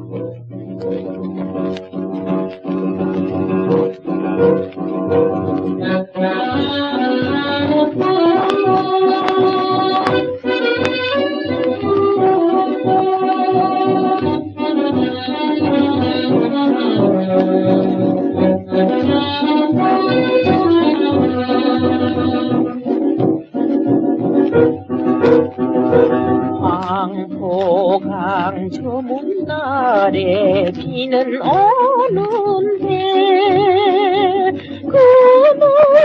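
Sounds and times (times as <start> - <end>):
woman singing with vibrato: 18.7 - 22.9, 26.6 - 36.0
dance band with brass: 22.3 - 26.6.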